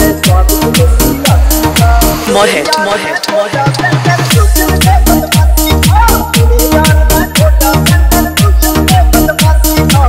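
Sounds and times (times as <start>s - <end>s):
heavy bass kicks: 0.0s - 2.3s, 3.8s - 10.0s
sharp percussion hits: 0.0s - 9.7s.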